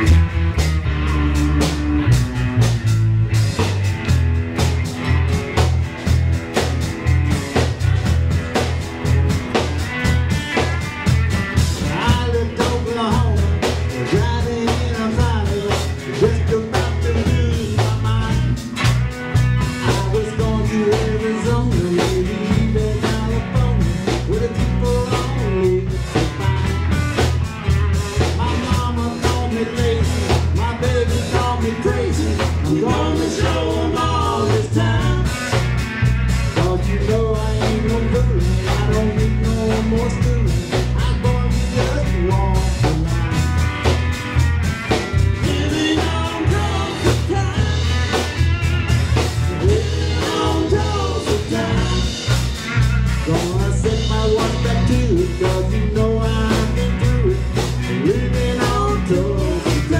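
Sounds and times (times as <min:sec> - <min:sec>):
acoustic rhythm guitar: 0:00.0 - 0:59.9
drum kit driving beat: 0:00.0 - 0:59.9
electric bass: 0:00.0 - 0:59.9
electric lead guitar: 0:00.0 - 0:59.9.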